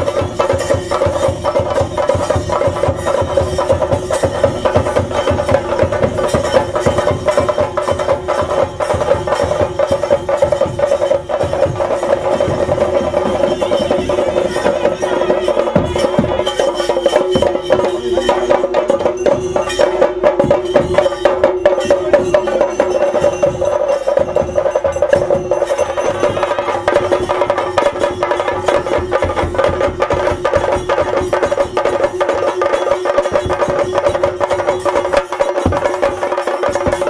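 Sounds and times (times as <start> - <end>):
drums beating fast rhythm: 0.0 - 37.0.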